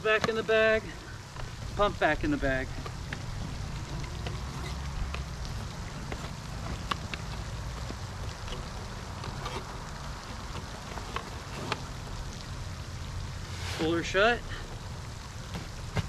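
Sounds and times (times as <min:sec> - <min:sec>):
fountain splashing: 0:00.0 - 0:16.0.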